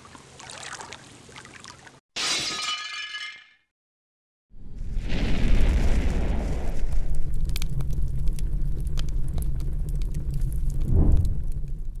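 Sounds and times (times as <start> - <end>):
fire crackling: 4.6 - 12.0
fire deep rumble: 4.6 - 12.0.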